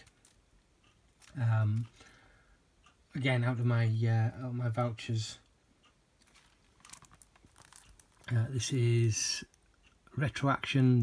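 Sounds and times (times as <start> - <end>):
plastic wrap crinkling: 6.2 - 9.5.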